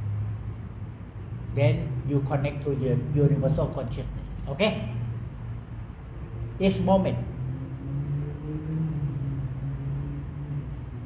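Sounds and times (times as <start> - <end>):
constant low rumble: 0.0 - 11.0
low wavering hum: 0.0 - 11.0.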